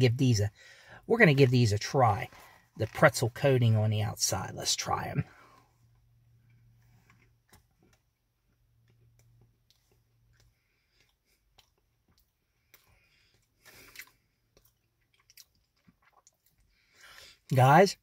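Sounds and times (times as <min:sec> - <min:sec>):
person chewing crunchy food: 0:08.7 - 0:17.4.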